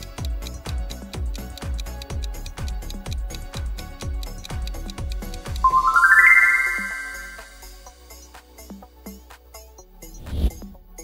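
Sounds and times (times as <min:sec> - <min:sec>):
background music with steady beat: 0:00.0 - 0:11.0
rising chime-like notes: 0:05.6 - 0:07.6.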